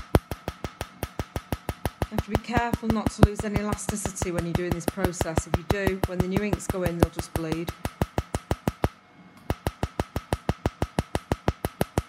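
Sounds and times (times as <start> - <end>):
laser snapping clicks: 0.0 - 12.0.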